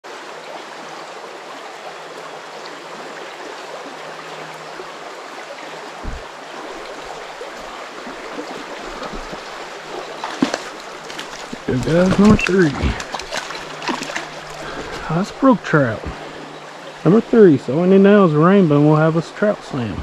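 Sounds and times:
creek water running over stones: 0:00.0 - 0:20.0
low thump: 0:06.0 - 0:07.7.

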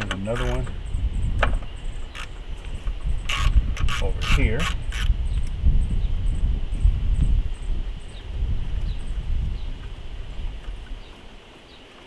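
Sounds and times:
wind rumble on microphone: 0:00.0 - 0:11.9.

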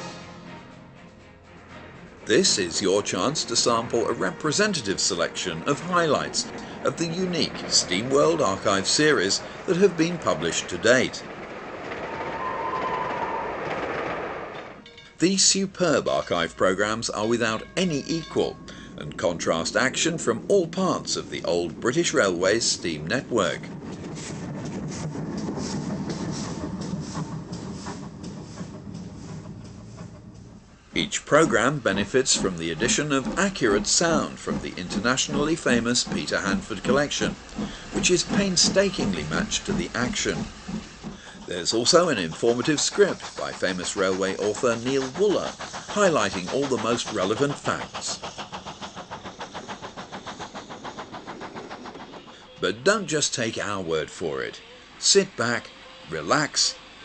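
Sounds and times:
steam locomotive exhaust beats: 0:00.0 - 0:57.0
steam hissing: 0:02.3 - 0:14.8, 0:15.4 - 0:57.0.

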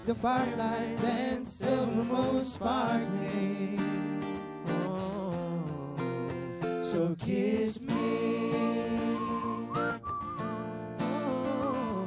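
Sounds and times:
acoustic guitar accompaniment: 0:00.0 - 0:12.0
man whistling a tune: 0:08.5 - 0:12.0.

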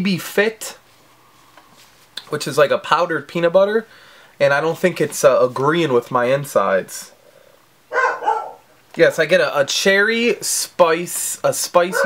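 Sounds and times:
dog barking: 0:07.9 - 0:08.6.

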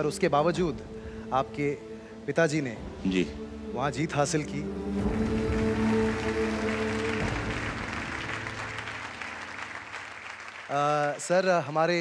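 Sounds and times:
audience applauding: 0:05.0 - 0:12.0.

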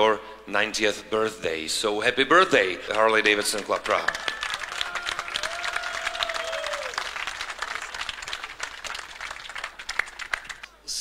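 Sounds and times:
audience applauding: 0:03.0 - 0:10.8.

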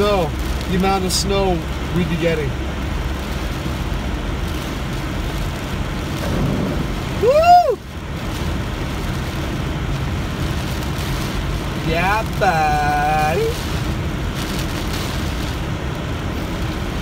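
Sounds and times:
car engine hum: 0:00.0 - 0:17.0
tyre and road noise: 0:00.0 - 0:17.0.

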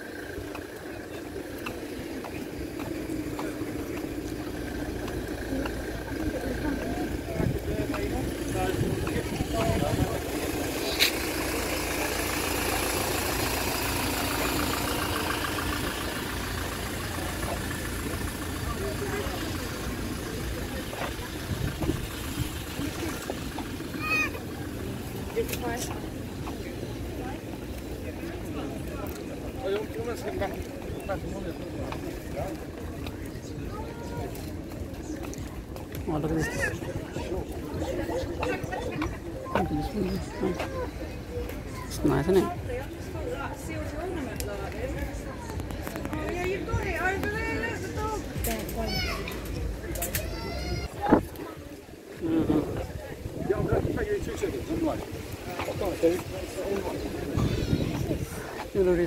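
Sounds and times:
low background rumble: 0:00.0 - 0:44.2
steady engine hum: 0:00.0 - 0:59.0
voices of passers-by: 0:00.0 - 0:59.0.

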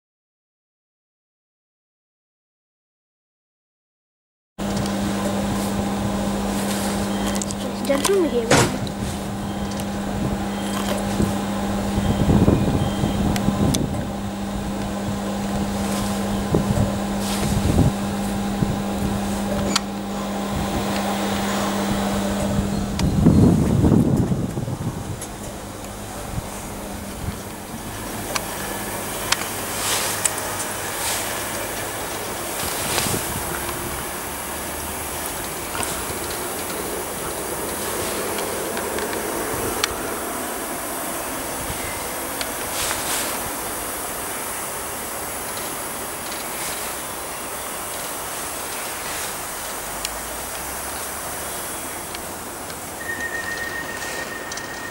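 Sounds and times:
train electrical hum: 0:04.6 - 0:54.9
train wheel and rail noise: 0:04.6 - 0:54.9.

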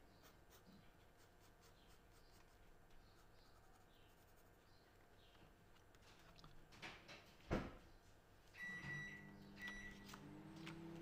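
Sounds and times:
low steady machine hum: 0:08.0 - 0:11.0.

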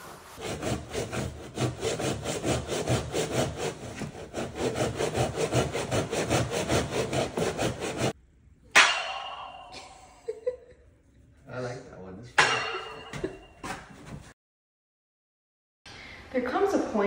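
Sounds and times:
hand saw cutting wood: 0:00.4 - 0:08.2.

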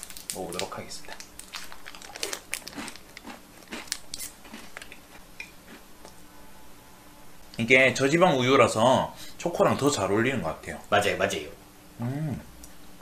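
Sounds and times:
biscuit crunching: 0:00.0 - 0:05.8.

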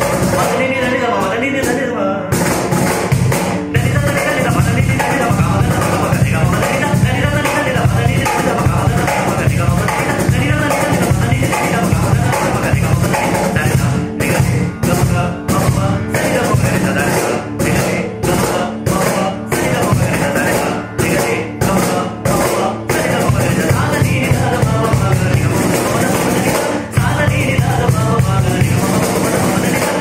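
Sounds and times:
man singing: 0:00.0 - 0:02.6, 0:03.6 - 0:30.0
cajon played by hand: 0:00.0 - 0:30.0.

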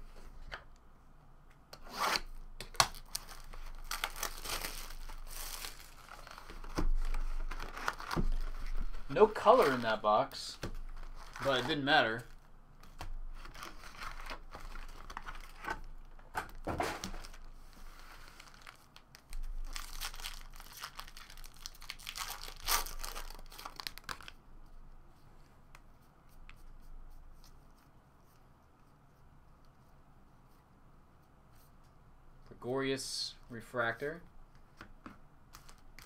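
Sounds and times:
handling cards: 0:02.6 - 0:24.4, 0:34.6 - 0:36.0
foil wrapper tearing and crinkling: 0:02.7 - 0:08.6, 0:18.4 - 0:24.4.

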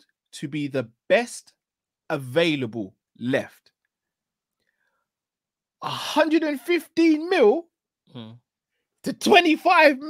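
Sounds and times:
man speaking: 0:00.4 - 0:01.5, 0:02.1 - 0:03.6, 0:05.8 - 0:07.6, 0:08.2 - 0:08.4, 0:09.1 - 0:10.0.

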